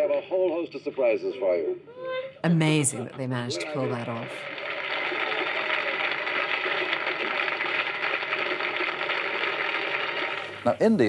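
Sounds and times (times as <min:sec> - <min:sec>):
studio audience applauding: 0:03.6 - 0:11.0.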